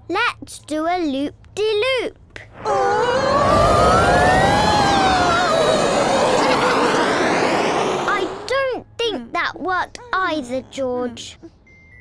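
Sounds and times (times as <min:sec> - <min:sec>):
cartoon aeroplane engine: 0:02.6 - 0:08.5
rushing air: 0:02.6 - 0:08.5
wavering cry sliding down: 0:02.6 - 0:08.5.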